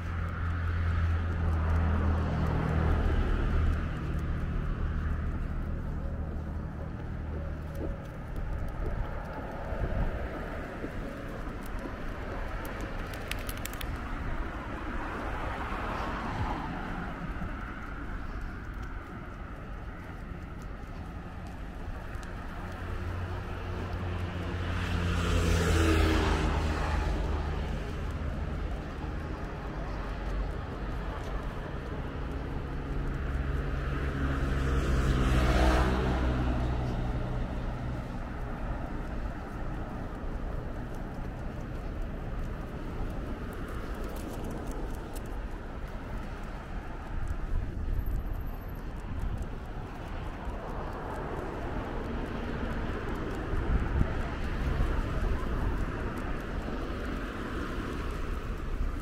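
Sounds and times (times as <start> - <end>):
background traffic noise: 0.0 - 59.0
vehicles driving past: 0.0 - 59.0.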